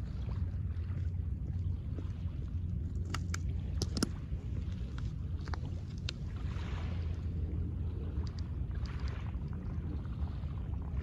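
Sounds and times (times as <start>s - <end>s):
waves lapping on pebbles: 0.0s - 11.0s
wind rumble on microphone: 0.0s - 11.0s.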